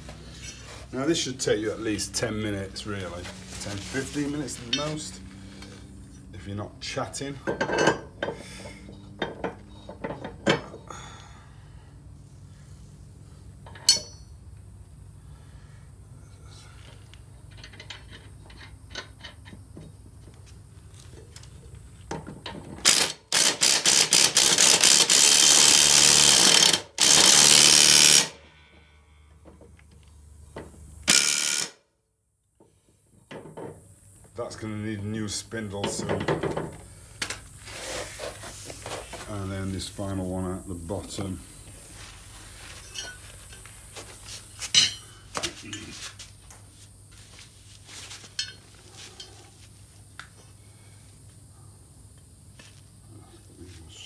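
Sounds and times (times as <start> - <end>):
impact driver hammering: 22.8 - 28.4, 31.1 - 31.8.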